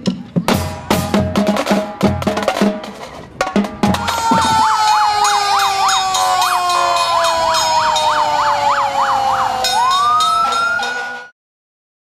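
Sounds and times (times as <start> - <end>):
fast yelping siren: 3.9 - 11.3
wailing siren: 3.9 - 11.3.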